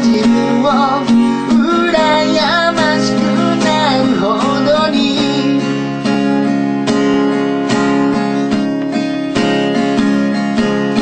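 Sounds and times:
man singing: 0:00.0 - 0:07.4
acoustic guitar strumming chords: 0:00.0 - 0:11.0.

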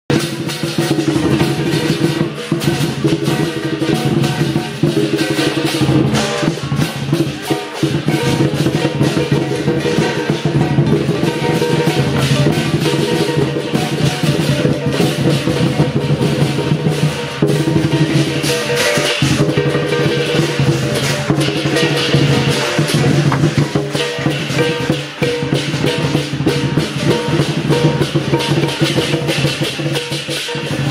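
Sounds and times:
cymbals clashing: 0:00.1 - 0:30.9
large drum beaten fast: 0:00.1 - 0:30.9.

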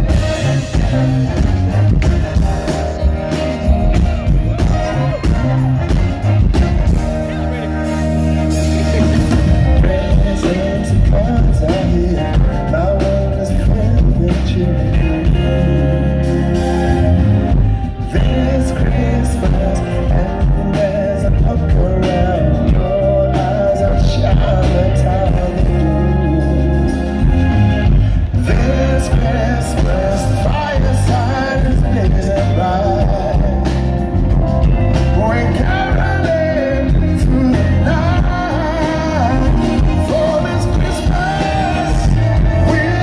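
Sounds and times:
drums: 0:00.0 - 0:43.0
keyboards: 0:00.0 - 0:43.0
live band playing: 0:00.0 - 0:43.0
man singing: 0:00.0 - 0:43.0.

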